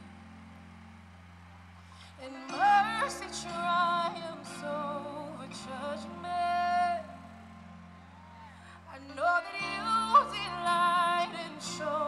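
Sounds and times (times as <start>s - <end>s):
band sustained chords: 0.0s - 12.0s
woman singing: 2.1s - 7.4s, 8.7s - 12.0s.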